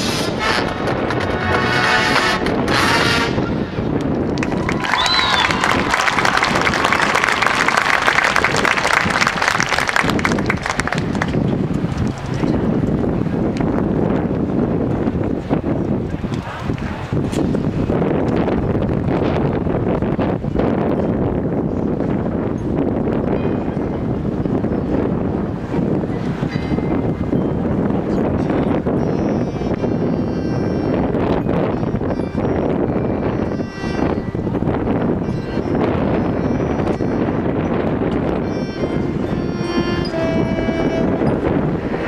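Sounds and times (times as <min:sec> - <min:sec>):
wind buffeting microphone: 0:00.0 - 0:42.0
marching band playing: 0:38.2 - 0:42.0.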